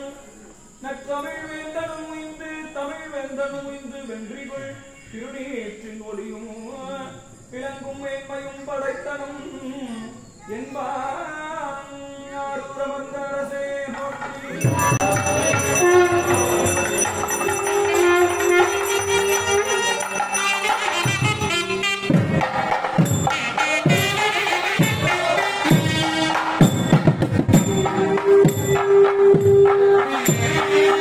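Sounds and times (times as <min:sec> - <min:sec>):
devotional chant-like melody: 0:00.0 - 0:31.0
drums beaten in quick strokes: 0:14.3 - 0:31.0
bright ringing metallic tones: 0:14.6 - 0:21.9
steady held tone: 0:14.6 - 0:22.1.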